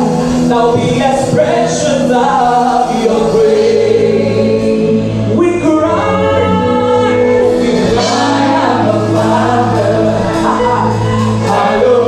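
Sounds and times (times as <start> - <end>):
voices singing along: 0.0 - 12.0
woman singing gospel song: 0.0 - 12.0.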